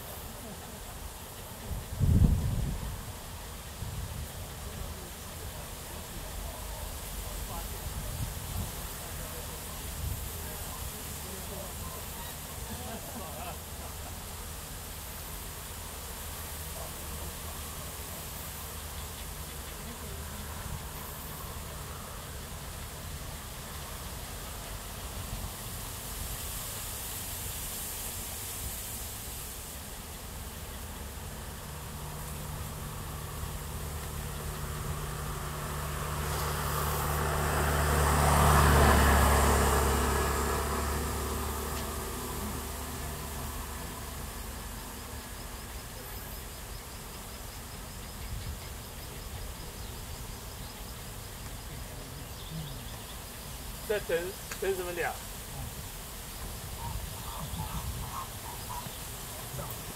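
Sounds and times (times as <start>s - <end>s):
outdoor hiss: 0.0s - 59.9s
passing vehicle engine hum: 0.0s - 59.9s.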